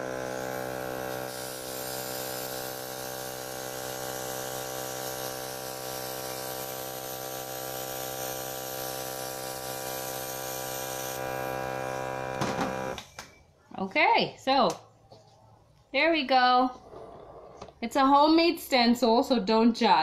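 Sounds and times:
compressed air hissing: 0.0s - 11.6s
compressor humming: 0.0s - 13.2s.

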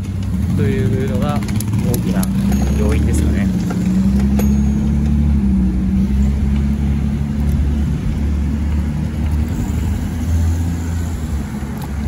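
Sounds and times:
traffic rumble and hum: 0.0s - 12.0s.

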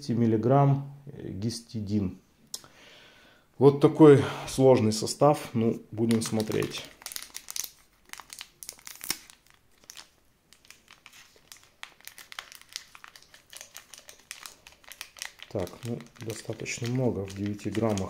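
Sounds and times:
sachet crinkling and tearing: 6.0s - 18.0s.

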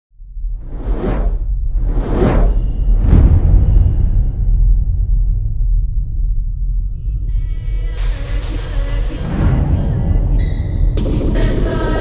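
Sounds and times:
deep bass rumble: 0.1s - 11.7s
cinematic whoosh: 0.3s - 6.5s.

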